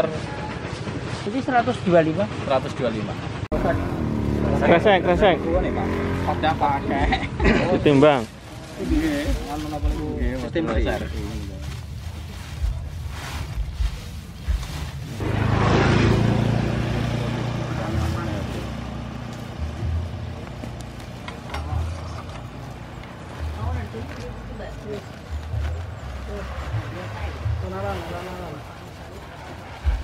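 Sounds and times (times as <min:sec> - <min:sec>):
engine running: 0:00.0 - 0:07.1, 0:14.2 - 0:30.0
men talking: 0:00.0 - 0:12.9, 0:16.2 - 0:30.0
plastic tarp rustling: 0:07.8 - 0:15.4.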